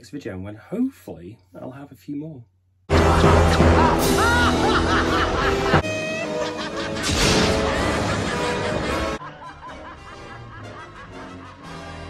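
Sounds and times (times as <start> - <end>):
cartoon villain laughing: 2.9 - 12.0
orchestral music: 2.9 - 12.0.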